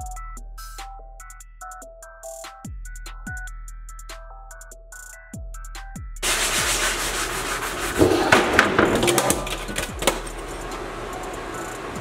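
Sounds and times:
sanding sponge rubbing wood: 6.2s - 9.5s.

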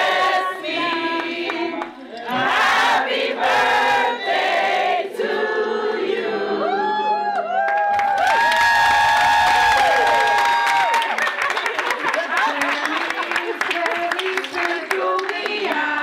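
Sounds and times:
people singing in unison: 0.0s - 6.9s, 14.2s - 16.0s.

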